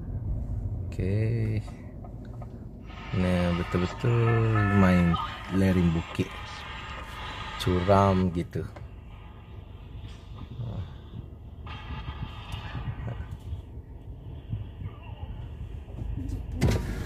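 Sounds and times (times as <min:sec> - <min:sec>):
car engine rumble: 0:00.0 - 0:17.0.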